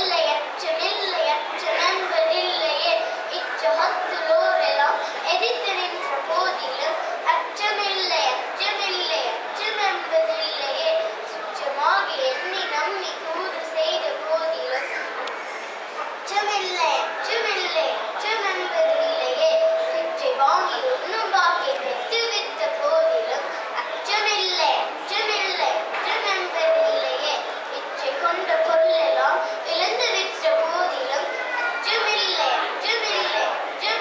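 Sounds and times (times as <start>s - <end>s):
girl reciting into a microphone: 0.0s - 15.2s, 16.2s - 34.0s.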